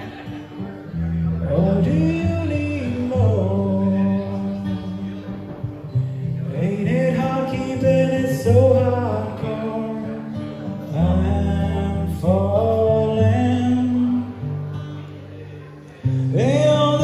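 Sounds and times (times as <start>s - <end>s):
acoustic guitar strumming: 0.0s - 17.0s
man singing: 0.0s - 17.0s.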